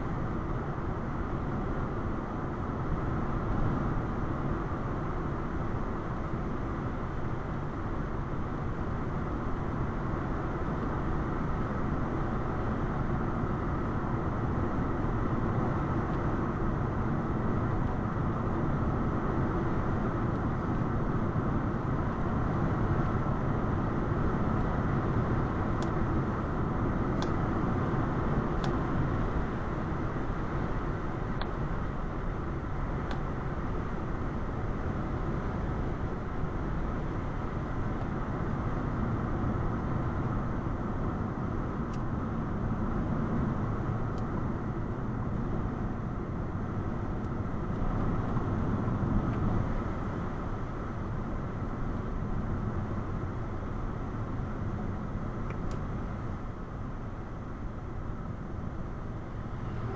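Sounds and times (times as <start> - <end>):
car road noise from inside: 38.2 - 59.9.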